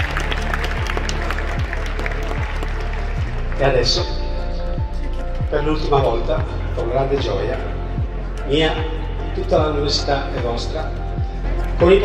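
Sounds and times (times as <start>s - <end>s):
crowd clapping: 0.0s - 5.4s
music over loudspeakers: 0.0s - 12.0s.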